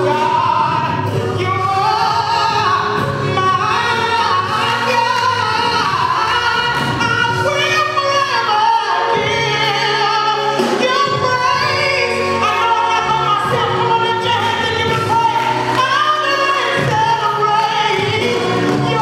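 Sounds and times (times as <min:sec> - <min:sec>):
sustained musical accompaniment: 0:00.0 - 0:19.0
woman singing gospel: 0:00.0 - 0:19.0.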